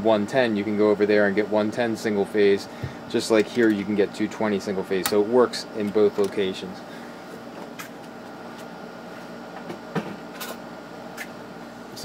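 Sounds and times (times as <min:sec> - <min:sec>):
cooling fans whirring: 0:00.0 - 0:12.0.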